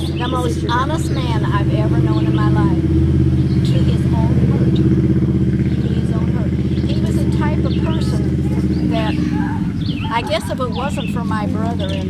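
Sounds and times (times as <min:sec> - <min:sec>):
engine droning: 0:00.0 - 0:12.0
faint voices: 0:00.0 - 0:12.0.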